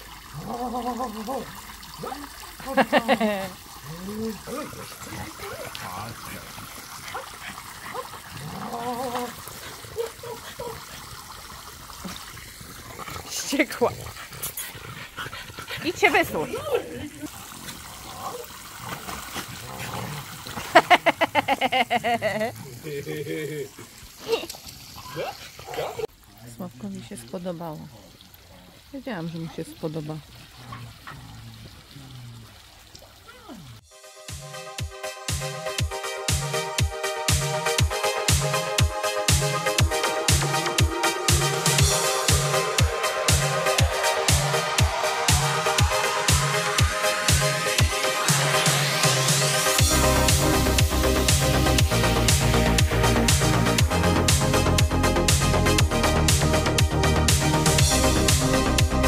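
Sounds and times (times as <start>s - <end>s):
dog splashing in water: 0.0s - 22.5s
sprinkler water spraying and pattering: 0.0s - 33.7s, 35.3s - 59.0s
electronic dance music: 33.9s - 59.0s.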